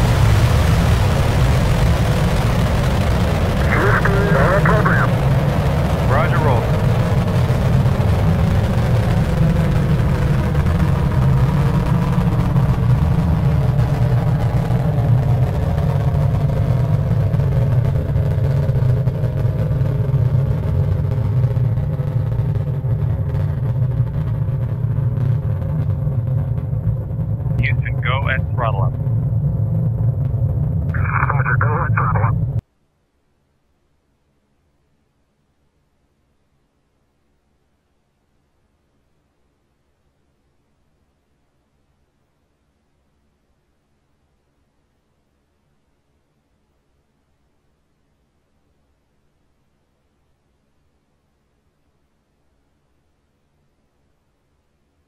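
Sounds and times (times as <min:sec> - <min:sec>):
rocket engines roaring: 0:00.0 - 0:32.6
radio voice: 0:03.6 - 0:05.2, 0:06.1 - 0:06.7, 0:27.6 - 0:28.9, 0:31.0 - 0:32.4.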